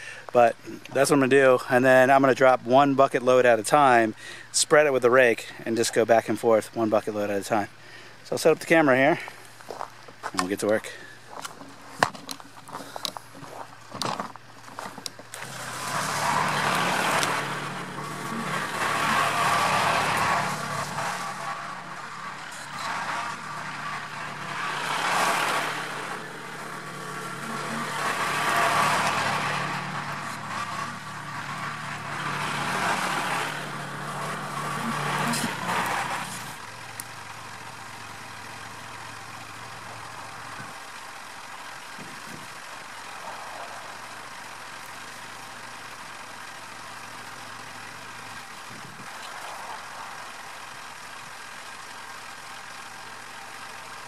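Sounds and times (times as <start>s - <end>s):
tractor diesel engine revving: 14.8s - 54.0s.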